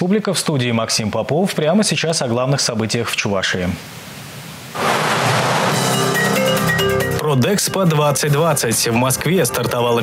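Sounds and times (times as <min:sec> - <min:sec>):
loud noisy whoosh: 0:04.7 - 0:06.6
background music: 0:05.4 - 0:10.0.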